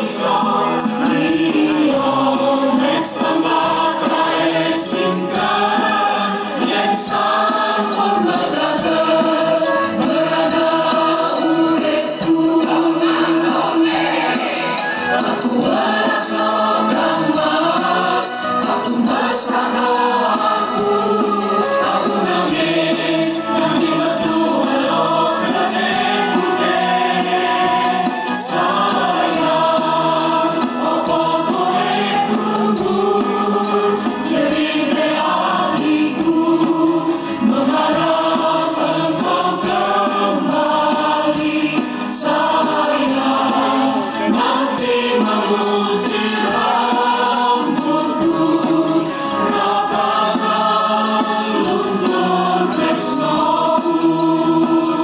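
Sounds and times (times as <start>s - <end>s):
choir singing in harmony: 0.0s - 55.0s.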